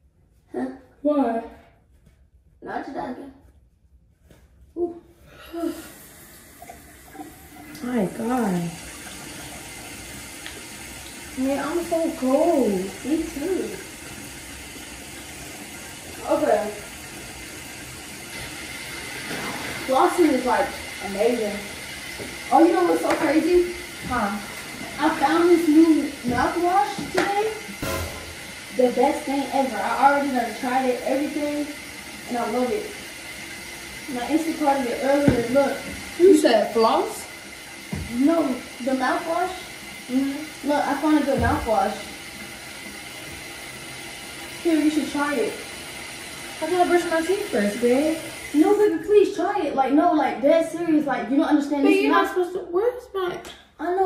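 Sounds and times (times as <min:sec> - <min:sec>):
faucet running into sink: 0:05.6 - 0:54.0.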